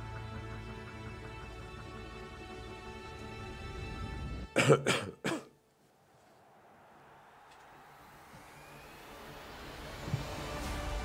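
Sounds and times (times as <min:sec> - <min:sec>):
music: 0:00.0 - 0:05.4, 0:08.4 - 0:11.0.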